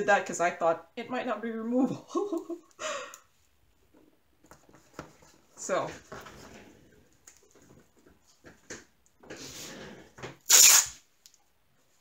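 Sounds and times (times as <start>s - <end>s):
masking tape ripping off roll: 10.4s - 11.1s
tape rustle: 10.4s - 11.5s.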